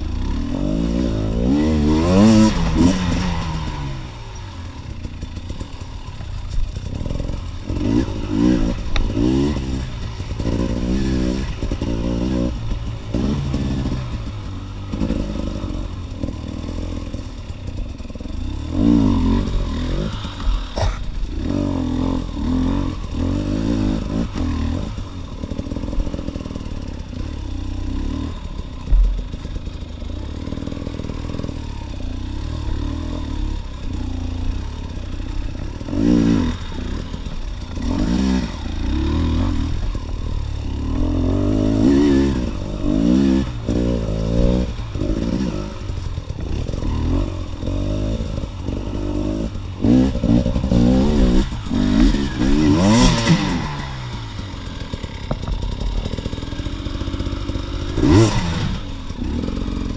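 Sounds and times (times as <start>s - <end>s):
dirt bike engine revving: 0.0s - 59.9s
chassis knocks and rattles: 55.3s - 56.0s.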